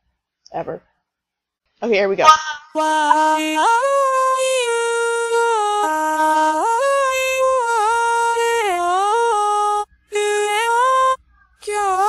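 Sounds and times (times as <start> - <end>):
synthesized singing voice: 2.3 - 12.0.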